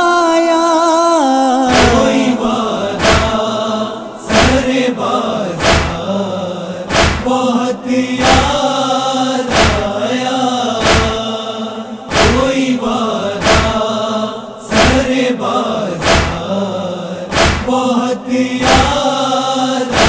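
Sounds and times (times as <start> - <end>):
voices chanting together: 0.0 - 20.0
heavy chest-beating thumps: 6.9 - 7.3, 17.3 - 17.7.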